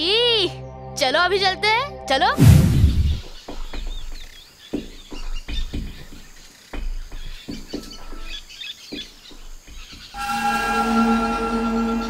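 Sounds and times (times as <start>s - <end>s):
sustained background music chord: 0.0s - 3.2s, 10.2s - 12.0s.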